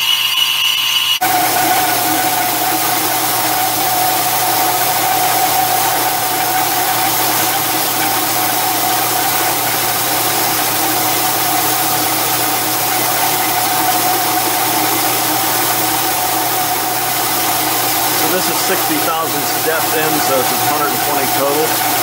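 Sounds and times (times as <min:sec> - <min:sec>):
metal lathe whining: 0:00.0 - 0:22.0.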